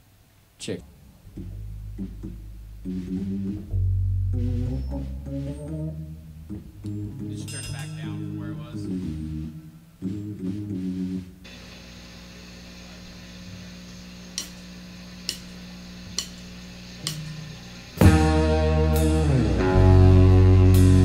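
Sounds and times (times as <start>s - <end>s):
amplifier hum: 0.0s - 21.0s
rock band playing: 1.3s - 11.3s, 18.0s - 21.0s.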